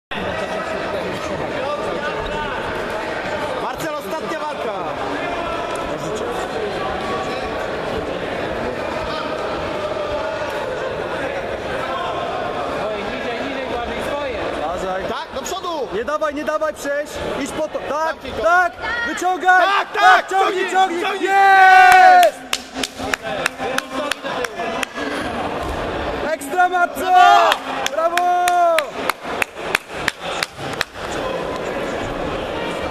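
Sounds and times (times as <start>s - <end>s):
crowd murmur: 0.1s - 14.7s, 17.1s - 32.9s
many voices chattering: 0.1s - 32.9s
hand claps: 22.2s - 25.0s, 27.5s - 31.2s.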